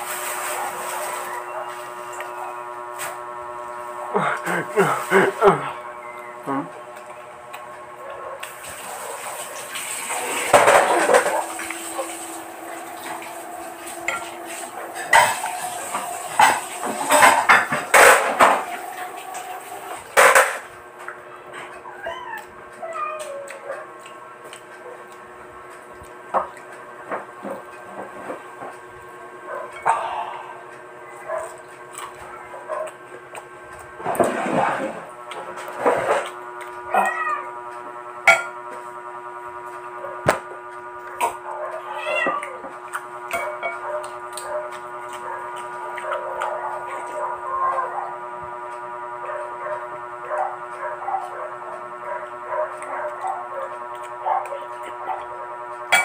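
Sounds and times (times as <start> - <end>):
crunching fried chicken: 31.2 - 34.0, 42.5 - 47.4.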